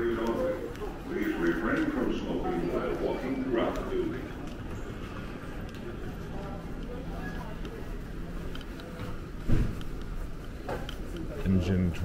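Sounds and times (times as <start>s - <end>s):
indistinct crowd voices: 0.0s - 12.0s
steady hum: 0.0s - 12.0s.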